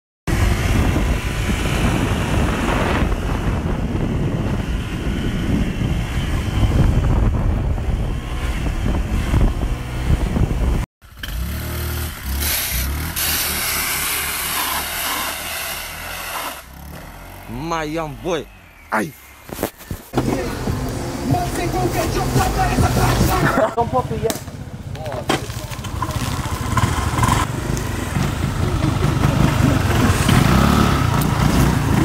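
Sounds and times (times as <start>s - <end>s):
motorbike engine rumbling: 0.3s - 32.0s.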